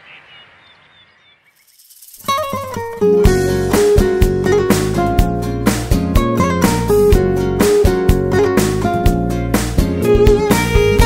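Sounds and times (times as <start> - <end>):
small birds chirping: 0.0 - 2.9.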